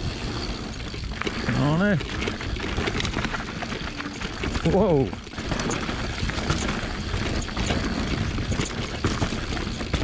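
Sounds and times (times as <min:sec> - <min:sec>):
bike rattling and knocking: 0:00.0 - 0:10.0
bike tyres on dirt trail: 0:00.0 - 0:10.0.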